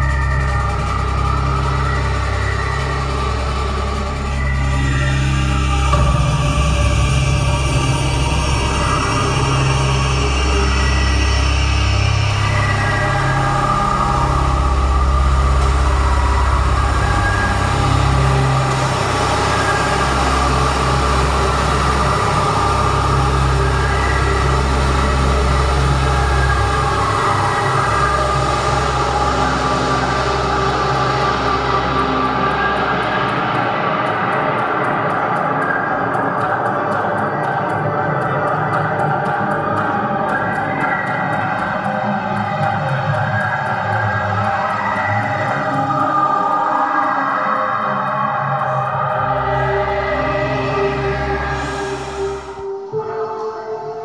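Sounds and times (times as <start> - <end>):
dark synthesizer music: 0.0 - 54.0.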